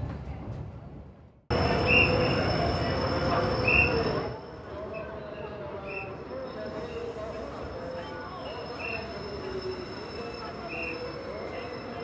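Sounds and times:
diesel locomotive engine and rolling: 1.5s - 12.0s.

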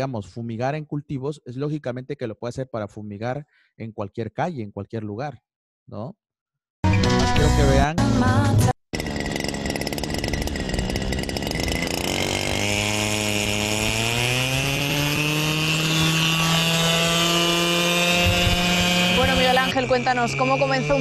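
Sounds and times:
drone motor and rotor running: 9.0s - 21.0s.

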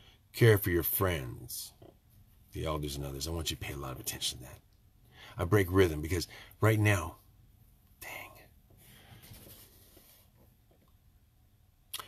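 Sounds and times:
man breathing softly: 5.0s - 5.4s, 6.3s - 6.6s, 8.0s - 10.3s.

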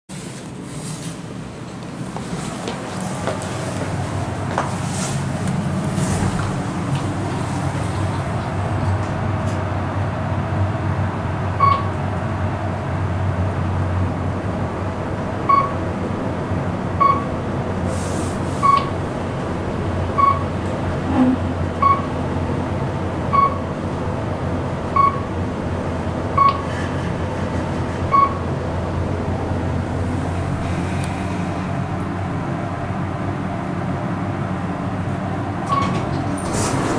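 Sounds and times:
elevator low rumble: 0.1s - 36.9s
short electronic beep: 11.6s - 11.9s, 18.6s - 18.9s, 21.8s - 22.1s.

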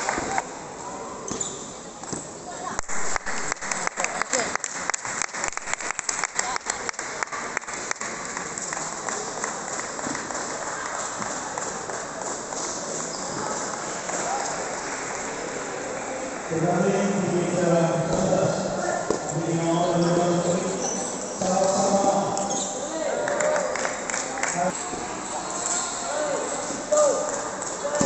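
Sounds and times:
chatter in sports hall: 0.0s - 28.0s.

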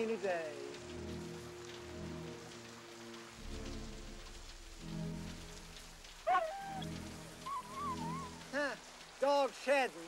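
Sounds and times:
steady rain falling: 0.0s - 10.0s.

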